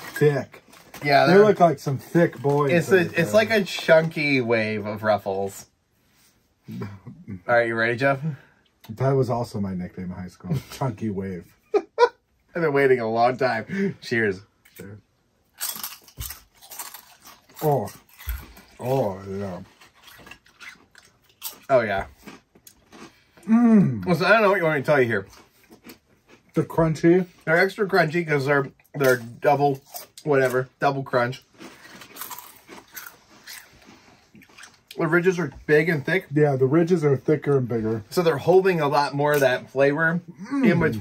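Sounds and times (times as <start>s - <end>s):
potato chips crunching: 15.6s - 23.2s, 31.3s - 33.8s.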